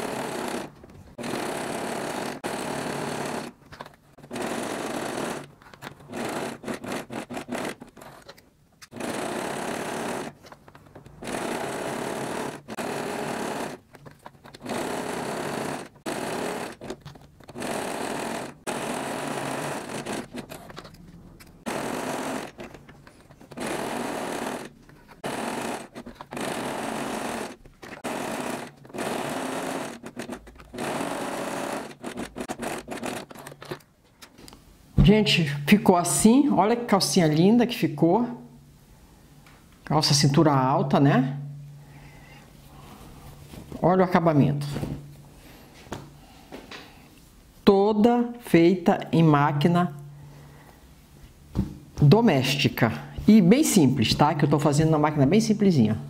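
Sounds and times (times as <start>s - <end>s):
sewing machine stitching: 0.0s - 33.8s.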